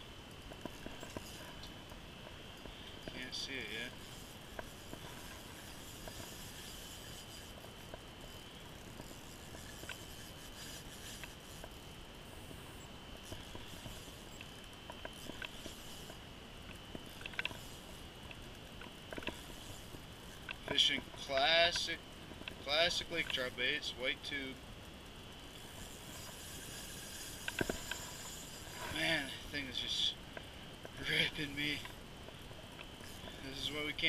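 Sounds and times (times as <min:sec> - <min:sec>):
steady low hiss: 0:00.0 - 0:34.0
fishing reel clicks and rubs: 0:00.4 - 0:01.7, 0:02.6 - 0:24.6, 0:25.5 - 0:34.0.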